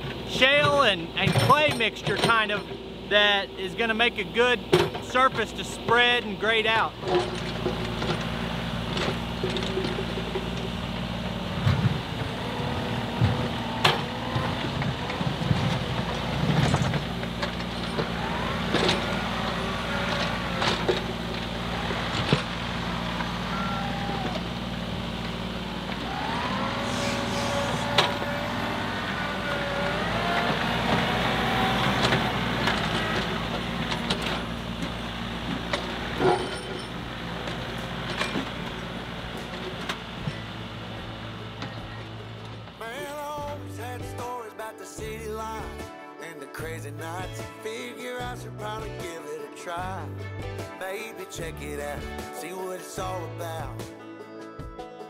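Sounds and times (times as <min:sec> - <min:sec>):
diesel engines droning: 0:00.0 - 0:45.9, 0:46.6 - 0:49.1, 0:49.8 - 0:52.2, 0:53.0 - 0:53.9
sliding whines: 0:07.0 - 0:43.0.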